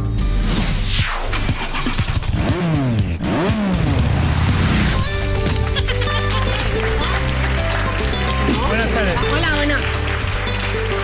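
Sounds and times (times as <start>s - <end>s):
ident music with bass: 0.0s - 11.0s.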